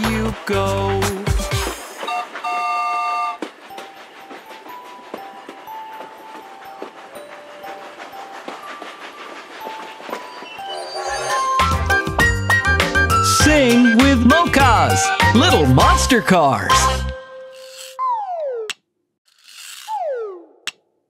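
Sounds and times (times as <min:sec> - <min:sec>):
train wheels clicking on track: 0:00.0 - 0:16.3
music: 0:00.0 - 0:17.8
train whistle chord: 0:02.0 - 0:05.2.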